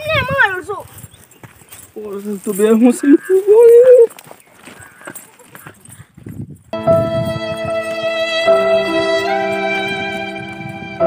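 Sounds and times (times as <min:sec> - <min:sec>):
music with held string tones: 0:06.8 - 0:11.0.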